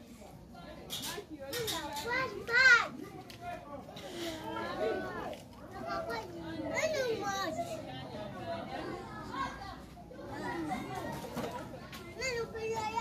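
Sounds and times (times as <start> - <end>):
children chattering and calling: 0.0 - 13.0.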